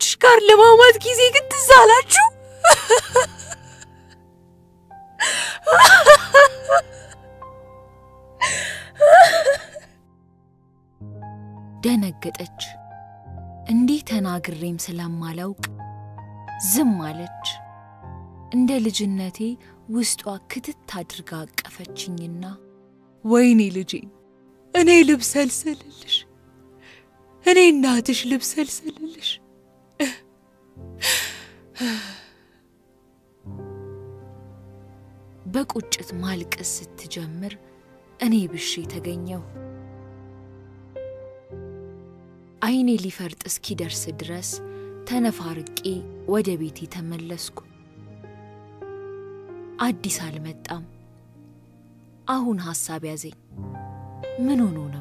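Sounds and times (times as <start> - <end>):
background music sustained tones: 0.0 - 55.0
breathy gasp: 5.2 - 5.8, 8.4 - 9.8, 31.0 - 32.6.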